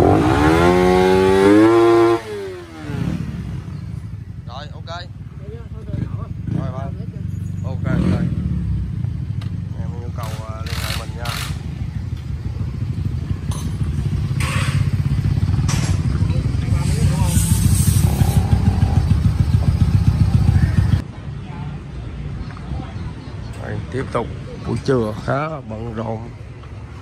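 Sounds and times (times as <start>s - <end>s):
motorcycle engine running: 0.0s - 21.0s
voices: 0.0s - 27.0s.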